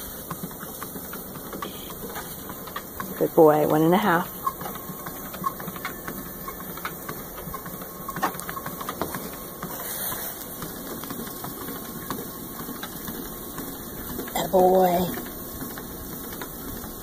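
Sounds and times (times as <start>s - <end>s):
dog paws ticking on belt: 0.0s - 9.8s
treadmill motor humming: 0.0s - 17.0s.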